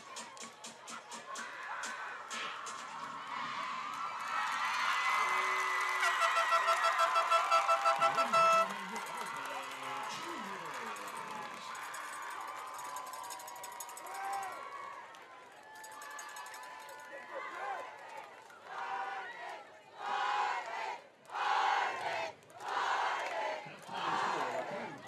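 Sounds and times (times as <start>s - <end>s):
stadium crowd noise: 0.0s - 25.0s.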